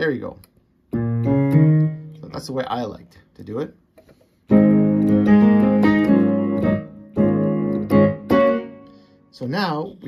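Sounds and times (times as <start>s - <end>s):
keyboard piano chords: 0.9s - 2.7s, 4.5s - 10.0s.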